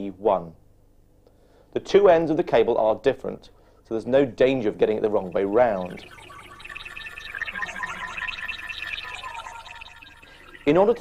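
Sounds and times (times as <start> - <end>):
synthesized bubbling warble: 4.1 - 11.0.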